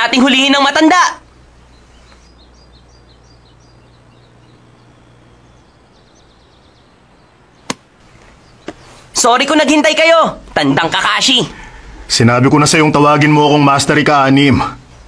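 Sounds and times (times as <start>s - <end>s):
low hum: 0.0s - 9.2s
faint high bird chirps: 1.2s - 9.0s.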